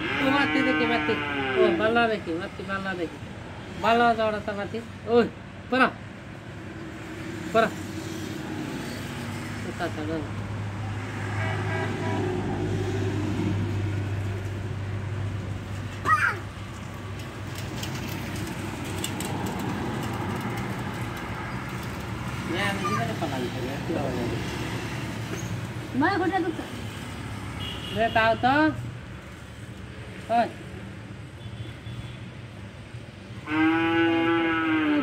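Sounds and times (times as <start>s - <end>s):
motor vehicle passing: 6.4s - 27.8s, 33.2s - 35.0s.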